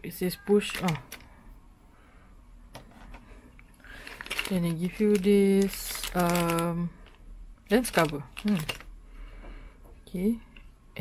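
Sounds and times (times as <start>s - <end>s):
plastic case handling: 4.0s - 7.2s, 7.8s - 8.9s.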